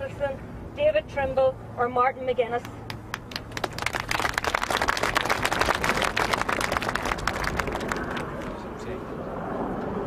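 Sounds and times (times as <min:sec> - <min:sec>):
crowd applauding: 0:03.1 - 0:08.5.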